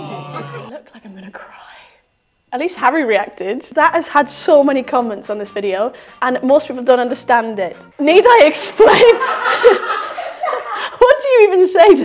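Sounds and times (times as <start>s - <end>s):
person laughing: 0.0s - 0.7s.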